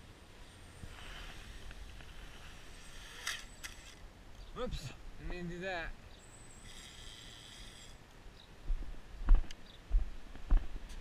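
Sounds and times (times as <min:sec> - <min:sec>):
soft footsteps: 0:08.6 - 0:11.0.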